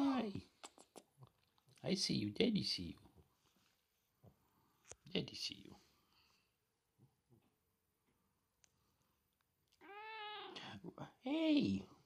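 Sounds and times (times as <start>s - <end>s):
cat meowing: 9.8s - 10.6s.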